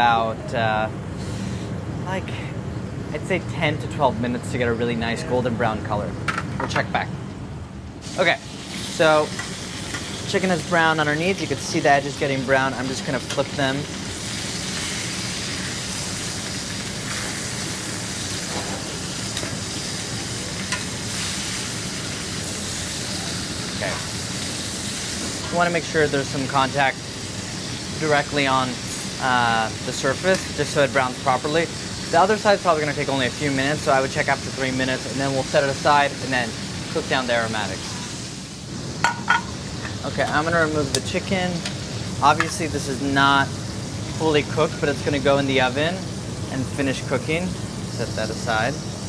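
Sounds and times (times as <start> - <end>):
steady background hum: 0.0 - 49.0
chicken sizzling in a skillet: 8.0 - 49.0
kitchenware clinking: 39.0 - 41.0.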